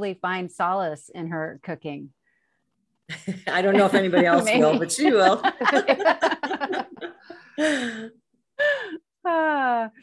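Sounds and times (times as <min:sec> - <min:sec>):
woman laughing breathily: 0:06.3 - 0:09.1.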